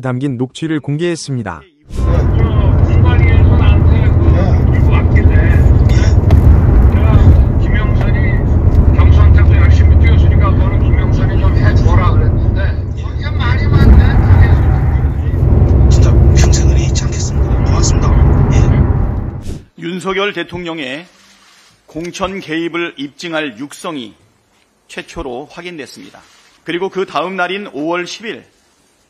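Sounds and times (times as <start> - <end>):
men talking on telephone: 0.0 - 21.1
low rumble: 1.9 - 19.5.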